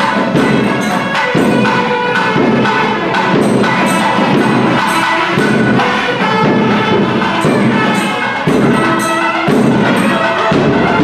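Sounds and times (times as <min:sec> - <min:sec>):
bell-like ringing: 0:00.0 - 0:11.0
percussion strokes: 0:00.0 - 0:11.0
wind instrument melody: 0:00.0 - 0:11.0.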